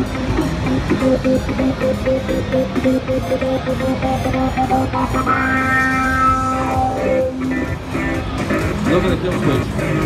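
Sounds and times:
bass guitar: 0:00.0 - 0:10.0
electric guitar: 0:04.1 - 0:08.8.

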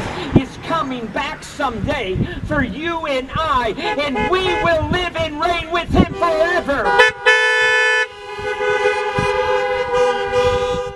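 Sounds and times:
car horns blaring: 0:03.6 - 0:10.9.

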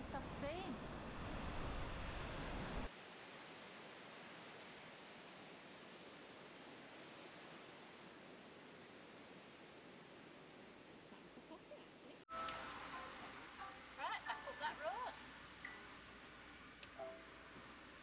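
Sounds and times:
faint hiss: 0:00.0 - 0:18.0.

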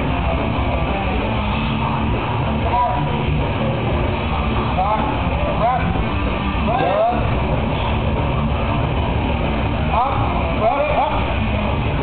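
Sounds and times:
loud gym rumble: 0:00.0 - 0:12.0.

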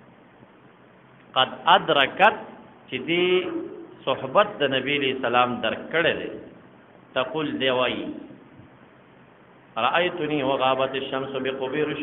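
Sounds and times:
man speaking: 0:01.4 - 0:06.5, 0:07.2 - 0:08.3, 0:09.8 - 0:12.0.

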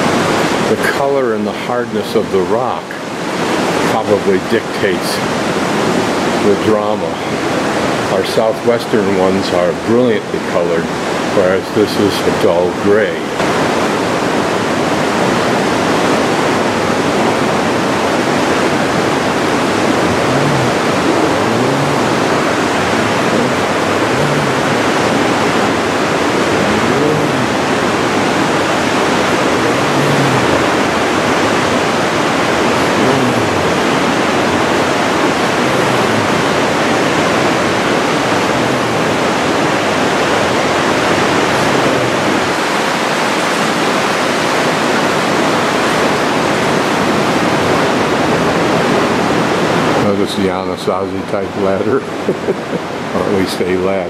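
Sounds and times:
river rushing through gorge: 0:00.0 - 0:54.0.

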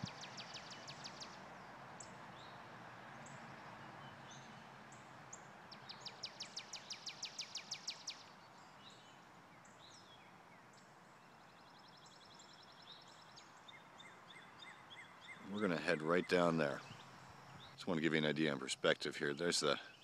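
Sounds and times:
bird chirps: 0:00.0 - 0:02.6, 0:03.2 - 0:20.0
birds calling: 0:00.0 - 0:20.0
faint outdoor hiss: 0:00.0 - 0:20.0.

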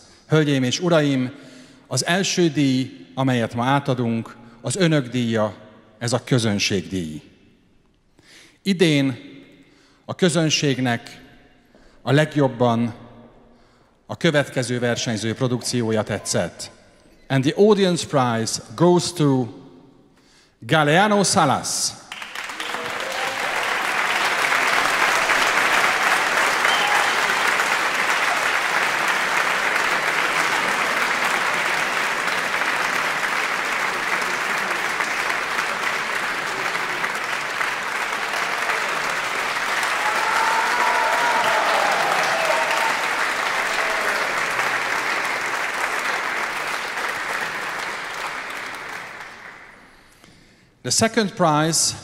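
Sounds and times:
audience applause: 0:22.1 - 0:50.0.

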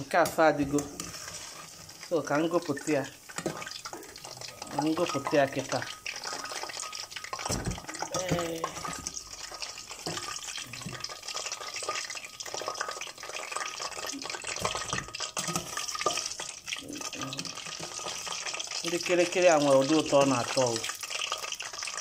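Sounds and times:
hot oil sizzling in a pot: 0:00.0 - 0:22.0.

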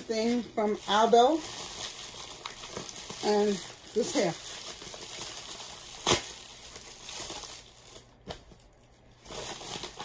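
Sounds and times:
plastic bag ripping: 0:00.0 - 0:08.4, 0:09.2 - 0:10.0
plastic crinkling and rustling: 0:00.0 - 0:10.0.

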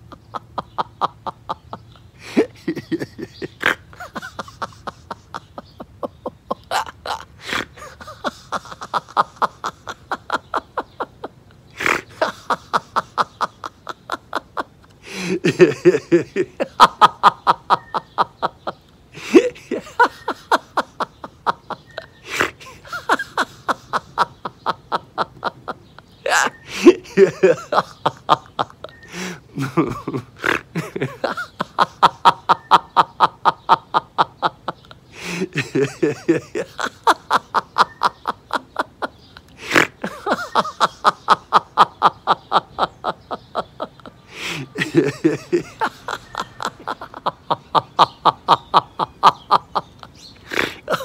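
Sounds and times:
man laughing: 0:00.0 - 0:51.0
breathy gasps: 0:15.0 - 0:15.4, 0:29.1 - 0:29.5, 0:35.1 - 0:35.5, 0:44.3 - 0:44.8.

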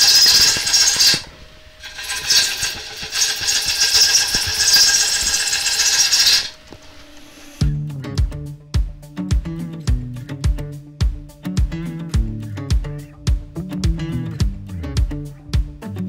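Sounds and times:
bowl gouge cutting wood on lathe: 0:00.0 - 0:07.6
background music with bass line: 0:07.6 - 0:16.0.

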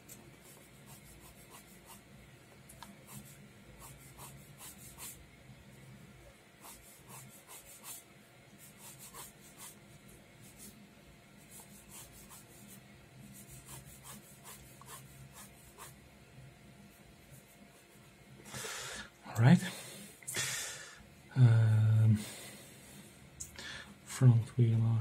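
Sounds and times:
pen scratching on paper: 0:00.4 - 0:02.0, 0:03.0 - 0:05.2, 0:06.6 - 0:09.8, 0:11.4 - 0:12.8, 0:13.4 - 0:16.0.

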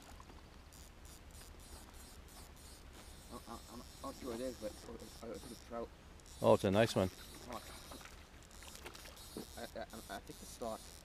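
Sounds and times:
faint outdoor background: 0:00.0 - 0:11.0
faint regular ticking: 0:00.5 - 0:11.0.

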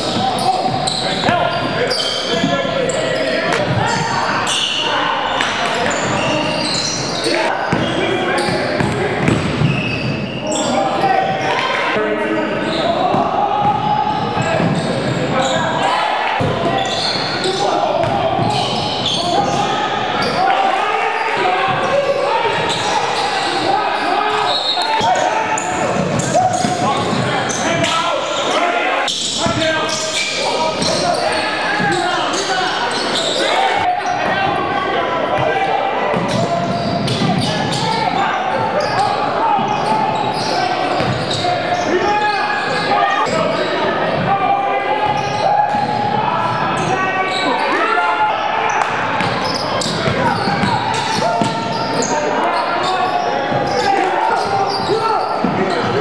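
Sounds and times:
indistinct voices echoing: 0:00.0 - 0:56.0
basketball bouncing on wooden court: 0:07.7 - 0:09.8, 0:41.0 - 0:41.4, 0:49.2 - 0:51.6.

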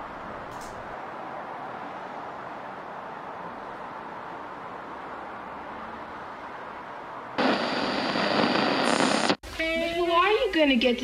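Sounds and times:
steady hiss: 0:07.4 - 0:09.4.

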